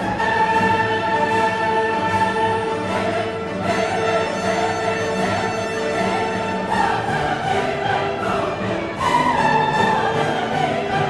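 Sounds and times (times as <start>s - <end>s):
orchestral classical music: 0.0s - 11.0s.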